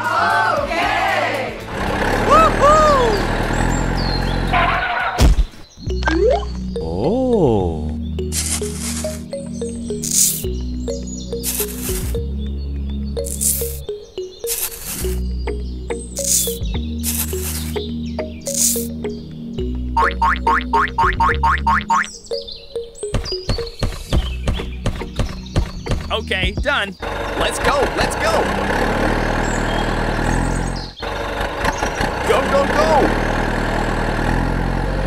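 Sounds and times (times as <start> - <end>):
background music with low bass: 0.0 - 28.8
springy cartoon chirps: 5.8 - 7.0, 8.1 - 12.3, 13.1 - 24.7.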